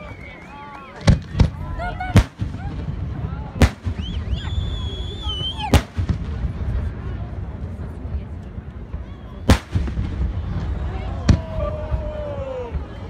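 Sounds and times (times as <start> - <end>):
fireworks bursting: 1.0 - 13.0
high whistle: 3.9 - 5.7.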